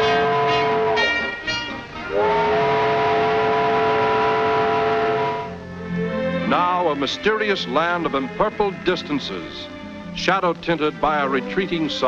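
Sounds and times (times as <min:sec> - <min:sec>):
steam locomotive whistle: 0:00.0 - 0:05.7.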